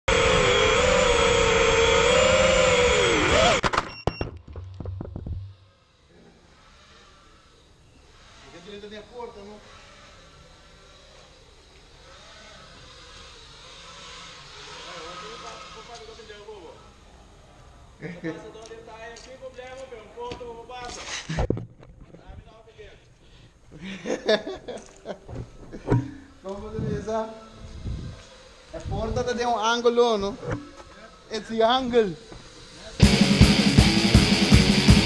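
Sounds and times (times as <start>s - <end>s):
drone motors whining: 0.0s - 3.6s, 4.8s - 18.1s, 24.8s - 35.0s.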